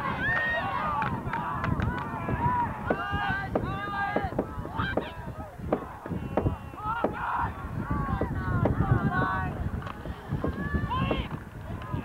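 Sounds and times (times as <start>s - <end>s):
people shouting and yelling: 0.0s - 12.0s
sharp knocks: 2.3s - 5.1s, 5.7s - 7.2s.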